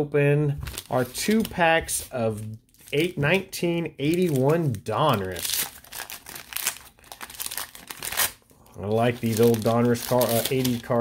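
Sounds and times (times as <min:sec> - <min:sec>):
paper wrapper crinkling and tearing: 0:00.6 - 0:03.4, 0:04.0 - 0:11.0.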